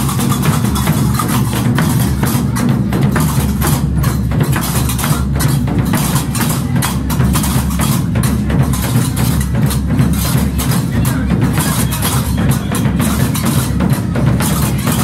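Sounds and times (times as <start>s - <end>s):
large drum beaten steadily: 0.0s - 15.0s.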